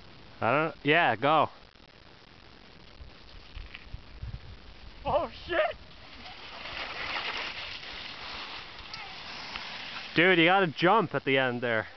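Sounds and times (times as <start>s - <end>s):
skis swishing on snow: 5.5s - 10.8s.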